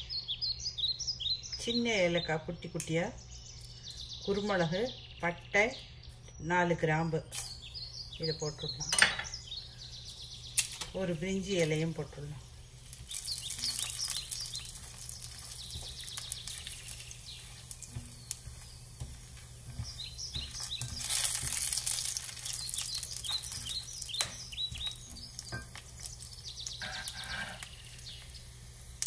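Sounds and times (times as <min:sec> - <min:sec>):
small crackles and pops: 0:02.7 - 0:04.2, 0:07.3 - 0:08.1, 0:09.4 - 0:29.0
spices sizzling in hot fat: 0:05.8 - 0:06.4, 0:07.2 - 0:29.0.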